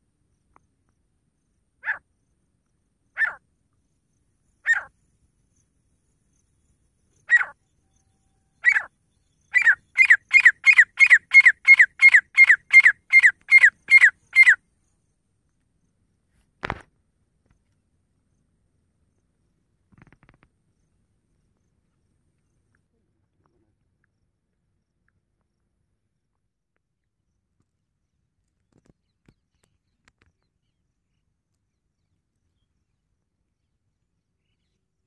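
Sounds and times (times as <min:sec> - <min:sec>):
francolin calling: 0:03.2 - 0:03.4, 0:04.6 - 0:05.0, 0:07.1 - 0:14.6.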